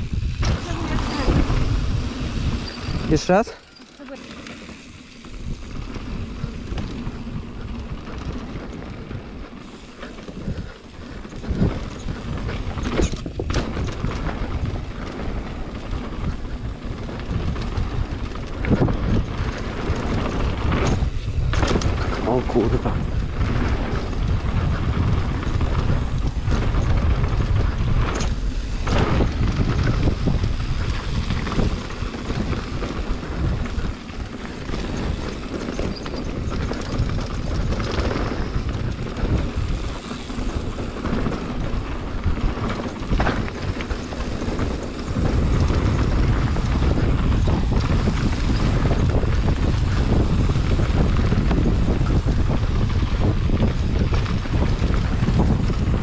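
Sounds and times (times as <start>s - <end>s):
bike knocks and rattles: 0.0s - 56.0s
tyres rolling on dirt trail: 0.0s - 56.0s
wind buffeting microphone: 0.0s - 56.0s.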